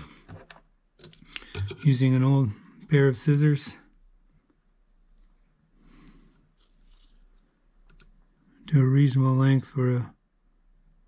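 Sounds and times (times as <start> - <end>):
faint rustling: 3.9 - 7.7.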